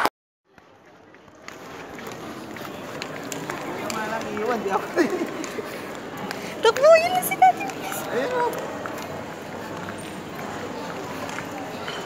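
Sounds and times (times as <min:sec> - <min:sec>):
murmur of voices: 0:00.5 - 0:12.0
running footsteps on tiled floor: 0:00.6 - 0:12.0.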